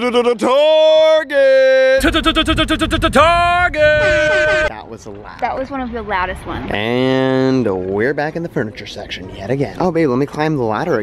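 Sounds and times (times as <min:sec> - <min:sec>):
high-pitched yelling: 0:00.0 - 0:04.7.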